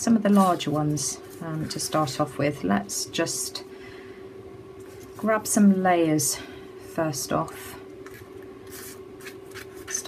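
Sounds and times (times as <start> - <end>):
faint steady hum: 0.0 - 10.0
paper rustling and rubbing: 0.3 - 2.0, 8.0 - 10.0.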